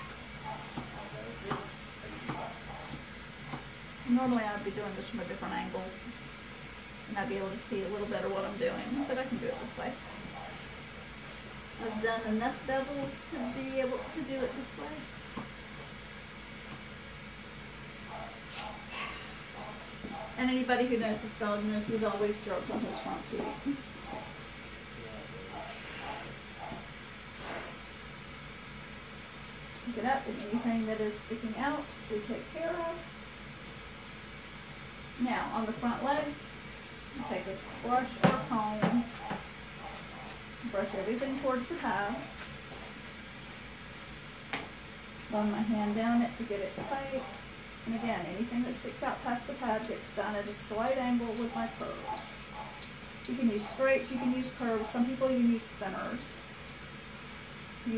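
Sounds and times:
air conditioner hissing: 0.0s - 57.9s
room hum: 0.0s - 57.9s
shears snipping hair: 0.4s - 10.7s, 11.3s - 17.3s, 18.1s - 24.4s, 28.8s - 43.0s, 44.5s - 57.9s.

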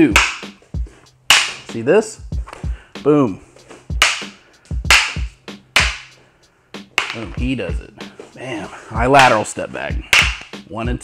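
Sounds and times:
training sticks clacking: 0.1s - 0.6s, 4.0s - 6.2s, 6.9s - 7.6s, 9.1s - 10.6s.

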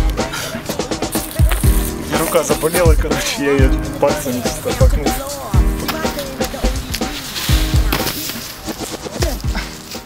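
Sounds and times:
music with heavy bass beat: 0.0s - 10.0s.

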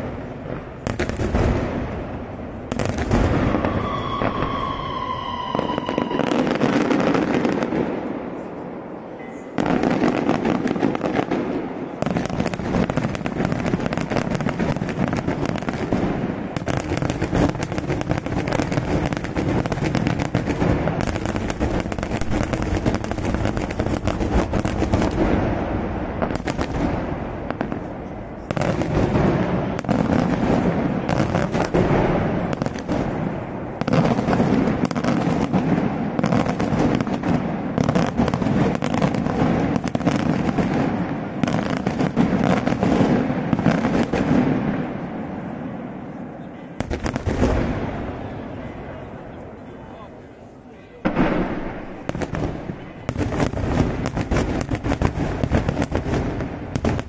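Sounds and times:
fireworks bangs and cracks: 0.0s - 50.2s, 51.0s - 57.0s.

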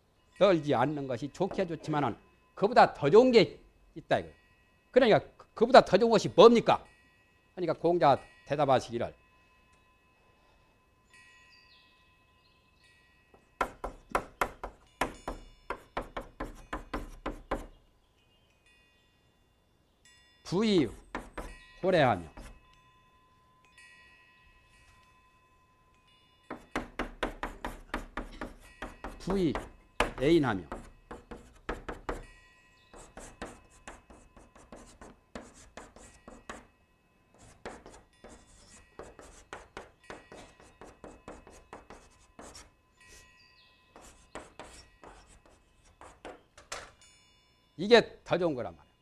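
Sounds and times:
chalk tapping and scraping blackboard: 13.6s - 17.8s, 20.8s - 21.5s, 22.2s - 22.6s, 26.5s - 32.2s, 32.9s - 36.7s, 37.4s - 43.2s, 43.9s - 46.8s.

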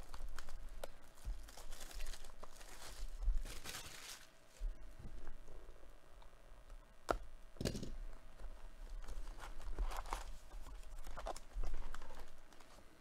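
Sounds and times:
cardboard and foil rustling: 0.0s - 5.4s, 8.4s - 13.0s.

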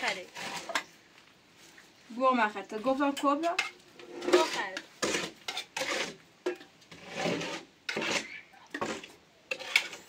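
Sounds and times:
food scraping against metal pot: 0.0s - 0.9s, 3.1s - 10.0s.

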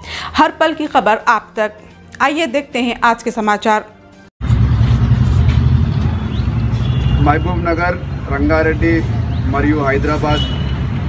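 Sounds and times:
loud low rumble: 4.4s - 9.5s.

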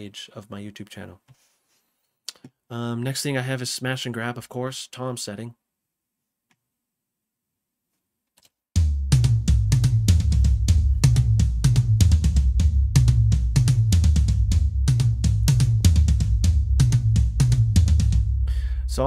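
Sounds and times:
fast hard drum hits: 8.8s - 18.4s
heavy bass: 8.8s - 19.0s.

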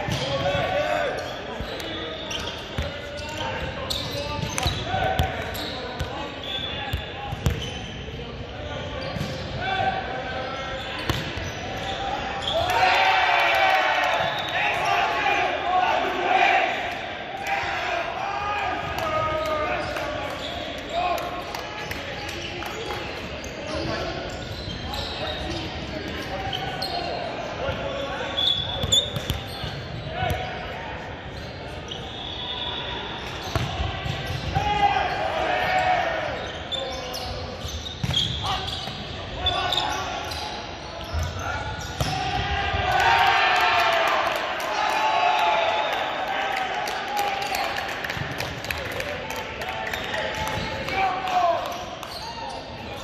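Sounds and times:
ball bouncing on hardwood court: 7.3s - 7.7s, 33.5s - 34.6s
players shouting: 33.7s - 36.6s, 41.2s - 47.8s.

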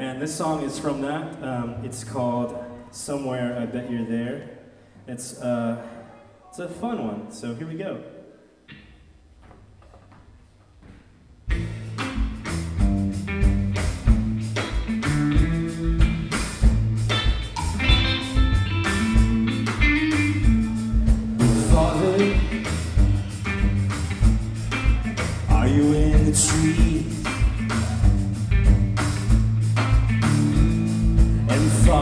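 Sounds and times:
drum kit: 11.4s - 32.0s
electric bass: 11.5s - 32.0s
electric guitar: 11.5s - 32.0s.

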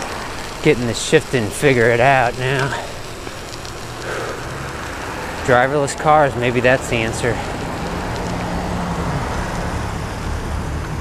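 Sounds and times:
bicycle tyres hissing on wet snow: 0.0s - 11.0s.

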